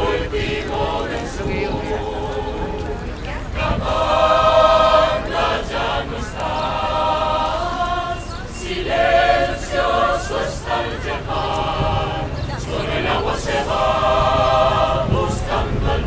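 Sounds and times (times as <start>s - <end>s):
mixed choir singing a cappella: 0.0s - 16.0s.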